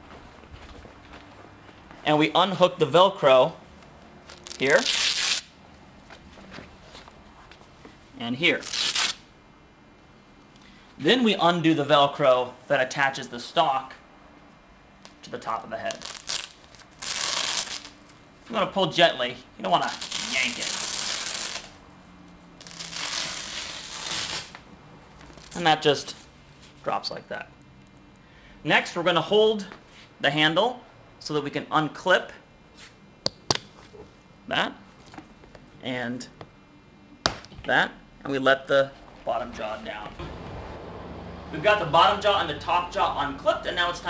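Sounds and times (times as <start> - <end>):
velcro ripping open: 4.2 - 5.6, 8.5 - 9.3, 15.8 - 18.1, 19.8 - 21.8, 22.6 - 24.6.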